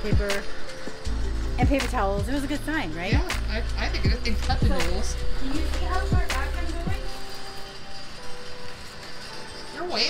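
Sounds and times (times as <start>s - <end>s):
background music: 0.0s - 10.0s
dolly wheels rolling: 3.9s - 10.0s.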